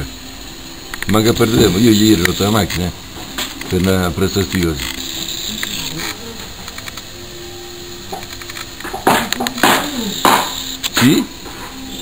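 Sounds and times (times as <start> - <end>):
man talking: 11.0 - 11.4.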